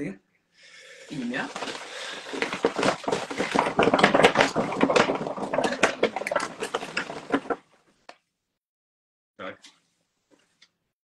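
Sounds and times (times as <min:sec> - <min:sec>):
paper rustling and crinkling: 0:01.2 - 0:07.6.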